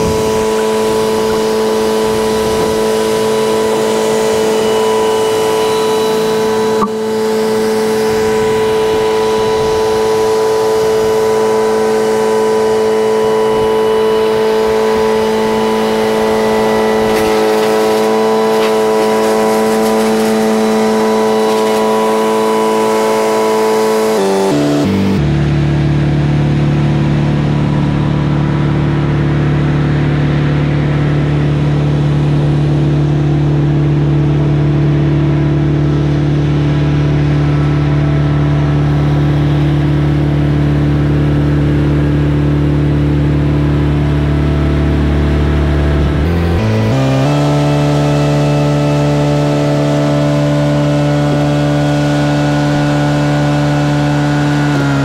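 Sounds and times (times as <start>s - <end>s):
large engine running: 0.0s - 55.0s.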